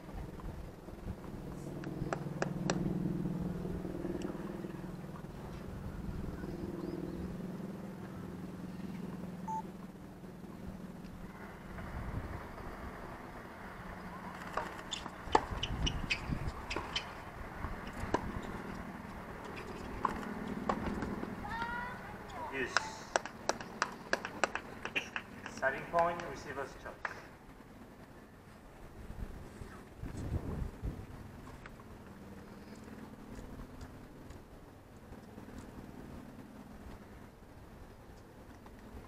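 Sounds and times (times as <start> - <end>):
steady low hum: 0.0 - 39.0
ball bouncing: 14.6 - 17.1.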